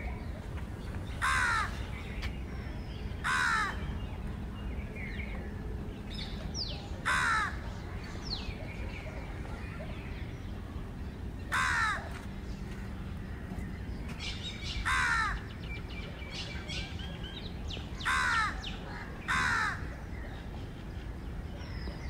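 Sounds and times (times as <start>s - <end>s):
crow cawing: 1.2s - 1.7s, 3.3s - 3.8s, 7.1s - 7.6s, 11.5s - 12.0s, 14.9s - 15.4s, 18.1s - 18.6s, 19.3s - 19.8s.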